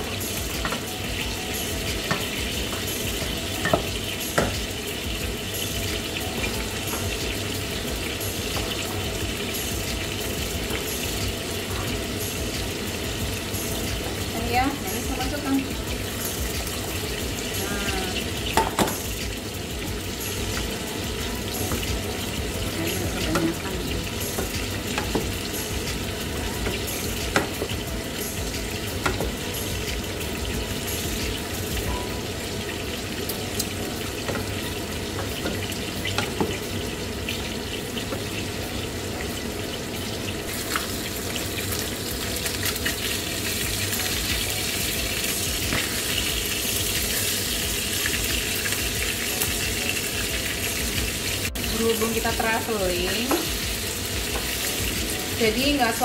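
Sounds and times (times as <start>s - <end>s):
food sizzling in pans: 0.0s - 56.0s.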